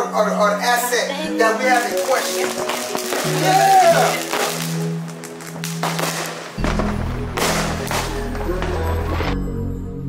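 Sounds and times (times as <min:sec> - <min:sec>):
firecrackers popping and crackling: 0:01.5 - 0:09.4.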